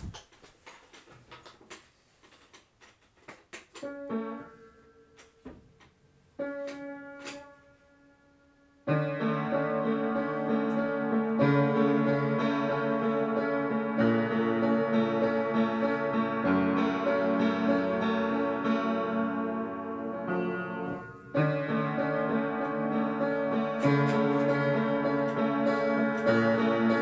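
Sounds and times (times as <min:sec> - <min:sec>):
small clicks and knocks: 0:00.0 - 0:04.0
piano chords: 0:03.7 - 0:27.0.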